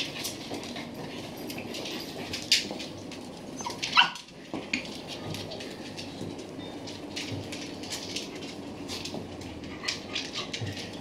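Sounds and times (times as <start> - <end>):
small dogs playing: 0.0 - 11.0
small dog barking: 3.6 - 4.2.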